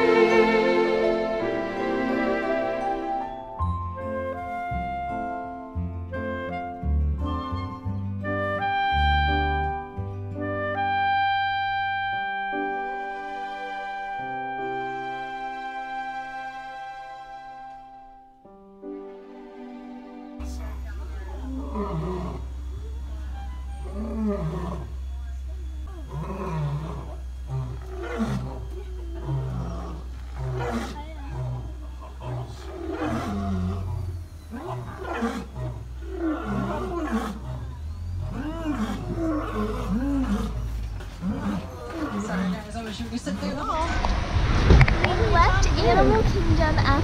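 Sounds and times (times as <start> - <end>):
steady low hum: 20.4 - 47.0
lion roaring: 21.3 - 22.8, 23.4 - 25.1, 25.9 - 43.0.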